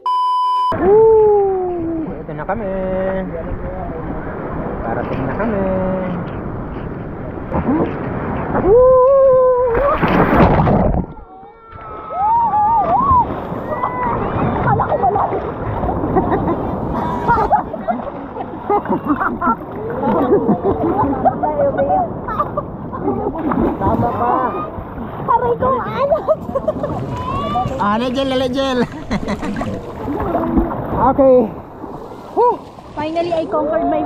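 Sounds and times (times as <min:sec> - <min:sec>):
high test-tone beep: 0:00.0 - 0:00.8
people calling and chattering: 0:11.2 - 0:34.0
seawater sloshing and lapping: 0:12.8 - 0:33.9.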